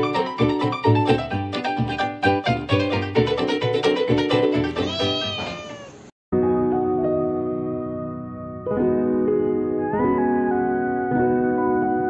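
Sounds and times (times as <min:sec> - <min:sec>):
plucked rhythmic music: 0:00.0 - 0:05.6
cat meowing: 0:04.8 - 0:06.1.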